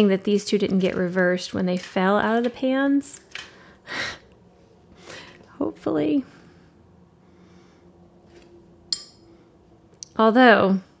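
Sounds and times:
faint room hum: 0:00.0 - 0:11.0
glass clink with high ring: 0:08.9 - 0:09.2.

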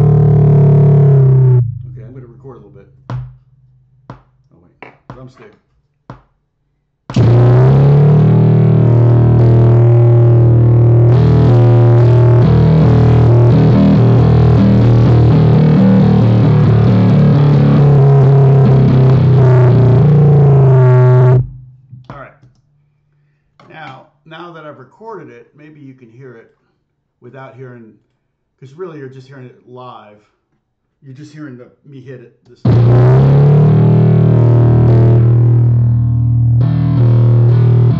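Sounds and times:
distorted bass drone: 0:00.0 - 0:04.2, 0:07.1 - 0:22.3, 0:32.7 - 0:37.9.

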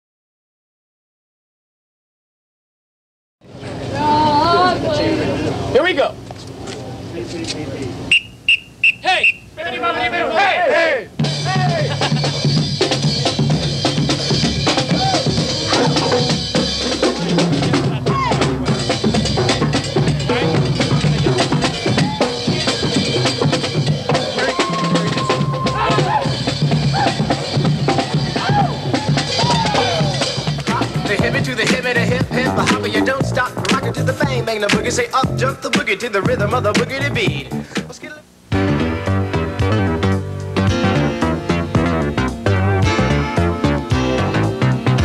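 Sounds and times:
crowd chatter: 0:03.4 - 0:08.2, 0:09.1 - 0:12.5, 0:14.1 - 0:33.9
band music with drum beat: 0:11.1 - 0:45.0.

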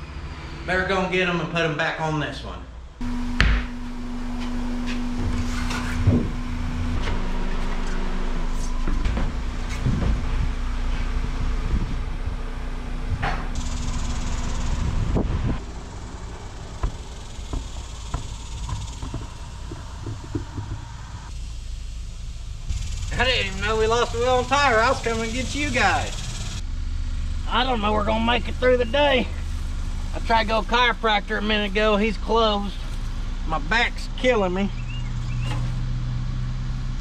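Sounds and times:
steady low hum: 0:00.0 - 0:37.0
tires knocking on shop floor: 0:03.0 - 0:08.2, 0:08.8 - 0:12.0, 0:13.2 - 0:21.4.

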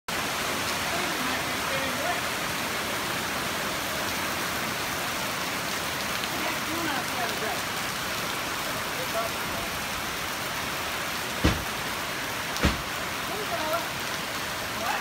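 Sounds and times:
heavy rain pouring on trees and street: 0:00.1 - 0:15.0.

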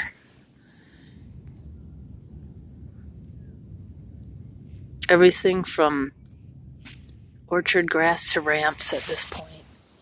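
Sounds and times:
low rumble: 0:00.1 - 0:10.0.

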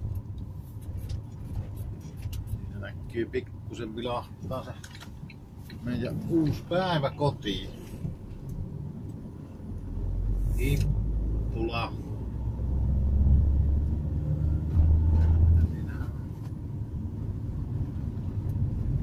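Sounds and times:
car engine from inside cabin: 0:05.1 - 0:19.0.

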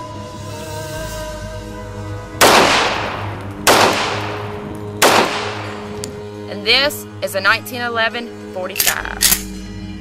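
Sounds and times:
pistol shots with echo: 0:02.4 - 0:05.9.

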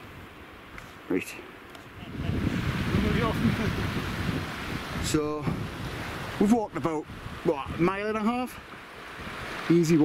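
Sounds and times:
wind buffeting microphone: 0:01.8 - 0:10.0.

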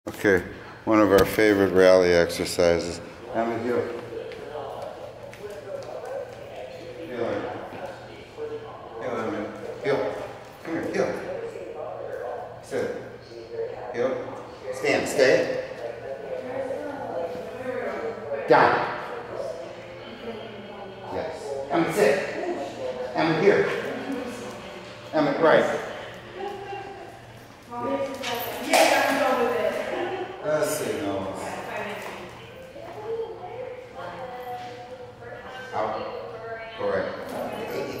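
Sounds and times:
steady room hum: 0:00.1 - 0:38.0
faint background voices: 0:02.1 - 0:38.0.

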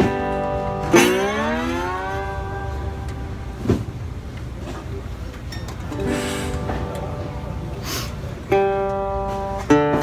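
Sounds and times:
slide resonator guitar: 0:00.0 - 0:10.0.

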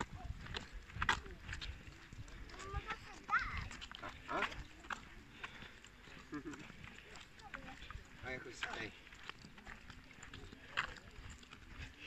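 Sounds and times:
faint voices outdoors: 0:00.0 - 0:12.0.

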